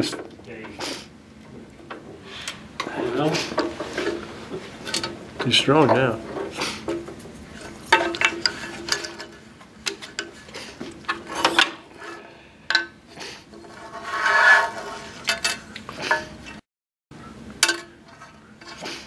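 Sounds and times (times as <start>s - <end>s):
clicks and knocks on metal table: 4.8s - 11.8s.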